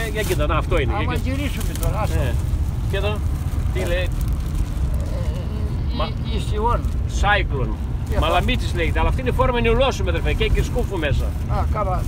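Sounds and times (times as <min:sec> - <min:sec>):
car cabin road rumble: 0:00.0 - 0:12.0
men speaking: 0:00.0 - 0:12.0.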